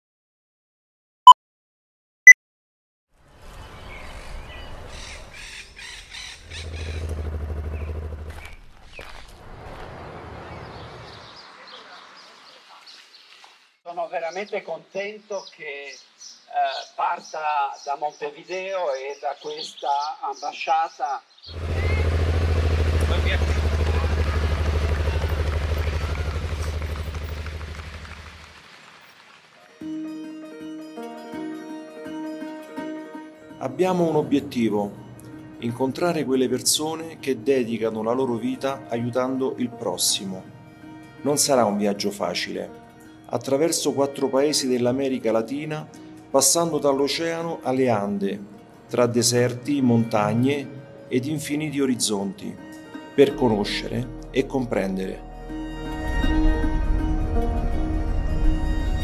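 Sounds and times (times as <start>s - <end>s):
crow cawing: 4.9s - 7.1s
motorcycle engine idling: 6.4s - 8.6s, 21.6s - 28.4s.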